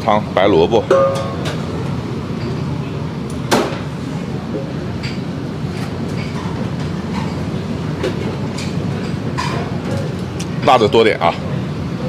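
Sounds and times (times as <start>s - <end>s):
kitchen clatter and rumble: 0.0s - 12.0s
metal pitcher clanking on pot: 0.9s - 1.6s, 8.6s - 9.7s.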